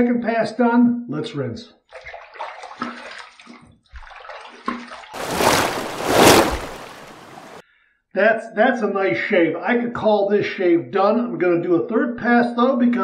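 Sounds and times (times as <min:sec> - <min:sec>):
water splashing on face: 0:04.0 - 0:07.6.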